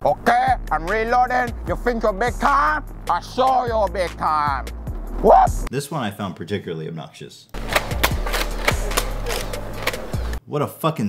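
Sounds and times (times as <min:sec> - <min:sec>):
sharp clicks and knocks: 0:07.5 - 0:10.4.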